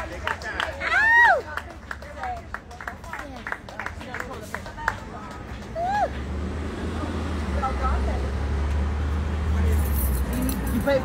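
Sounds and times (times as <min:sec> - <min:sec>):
crowd chatter: 0:00.0 - 0:11.0
vehicle engine rumble: 0:00.0 - 0:11.0.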